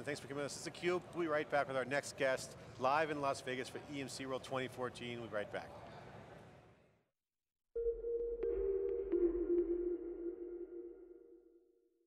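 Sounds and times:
synth tone: 7.8s - 11.9s.

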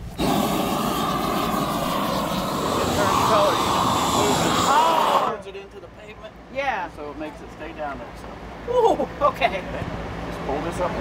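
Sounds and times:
propane torch rushing: 0.0s - 5.4s.

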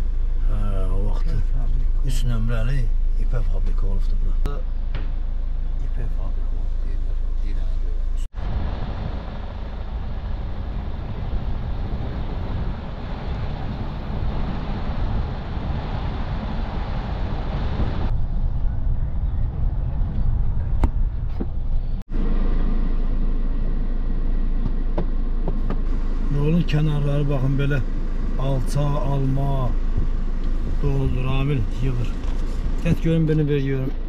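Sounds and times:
car road and engine noise: 0.0s - 34.0s.

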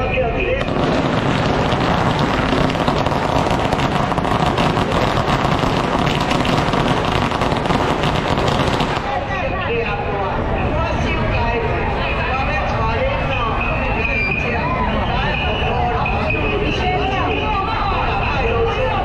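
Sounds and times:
crowd voices: 0.0s - 19.0s
firecracker string crackling: 0.6s - 9.7s.

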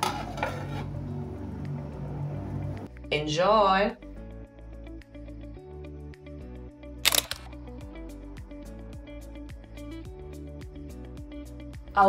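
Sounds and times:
camera shutter click: 7.0s - 7.5s
music with steady beat: 7.4s - 12.0s.

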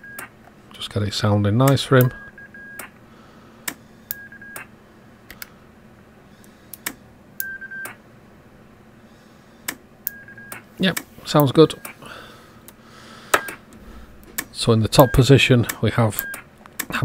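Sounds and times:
electronic radio beeps: 2.0s - 2.9s, 15.0s - 15.3s.

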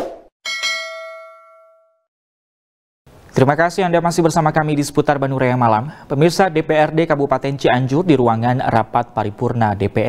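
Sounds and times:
bell-like ding: 0.4s - 2.1s.

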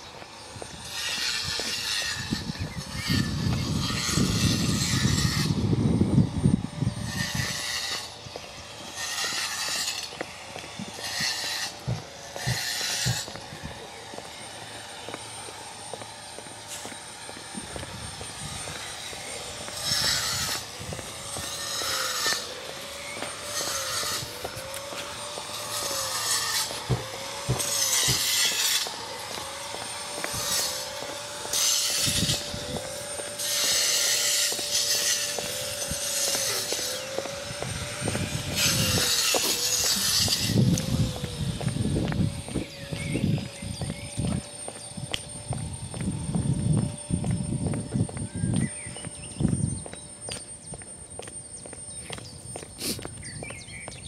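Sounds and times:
footsteps on gritty pavement: 0.0s - 54.0s.

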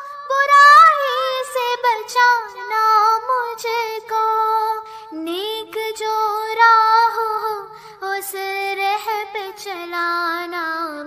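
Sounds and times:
child singing: 0.0s - 11.0s.

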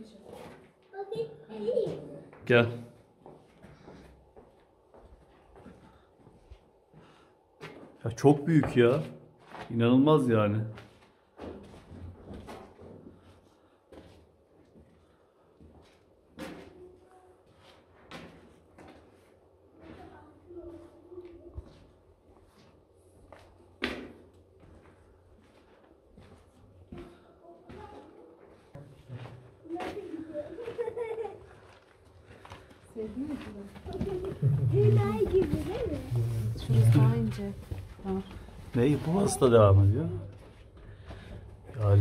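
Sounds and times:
footsteps in tunnel: 0.0s - 42.0s.

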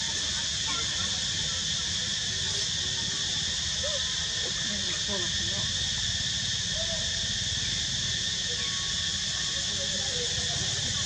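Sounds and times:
faint distant voices: 0.0s - 11.0s
high-pitched insect drone: 0.0s - 11.0s.

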